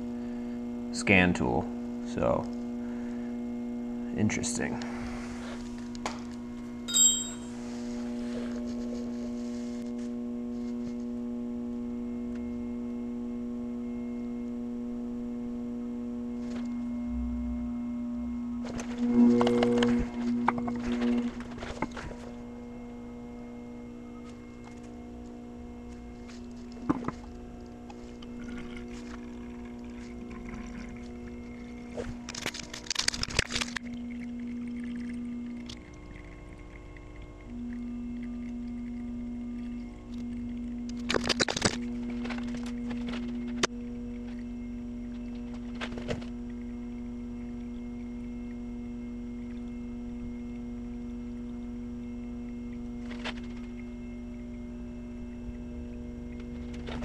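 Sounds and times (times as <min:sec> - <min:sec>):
pump motor humming: 0:00.0 - 0:10.9, 0:18.2 - 0:57.0
metallic clink: 0:06.9 - 0:07.6
shuffling and clatter: 0:41.0 - 0:43.7, 0:53.0 - 0:53.8.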